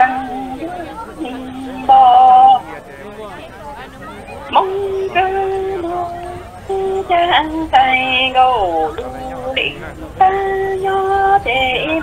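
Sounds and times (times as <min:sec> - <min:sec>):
person singing chanted poetry: 0:00.0 - 0:02.9, 0:04.3 - 0:12.0.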